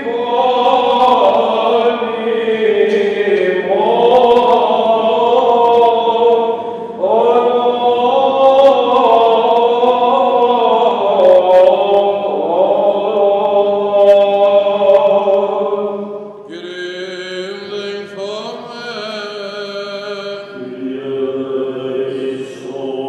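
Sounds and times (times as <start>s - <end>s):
voices chanting melismatic melody: 16.0s - 23.0s.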